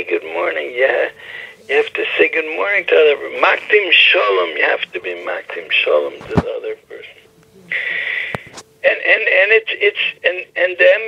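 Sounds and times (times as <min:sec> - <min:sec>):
man talking: 0:00.0 - 0:07.2.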